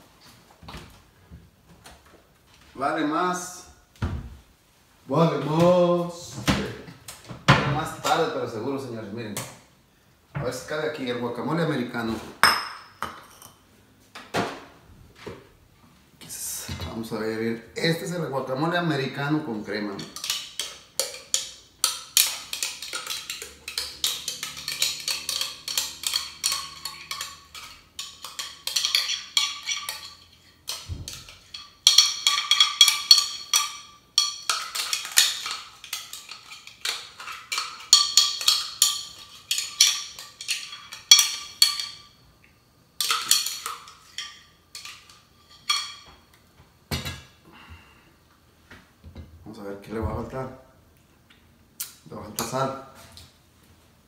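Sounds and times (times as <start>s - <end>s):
metal spoon clinking in glass jar: 20.0s - 42.2s.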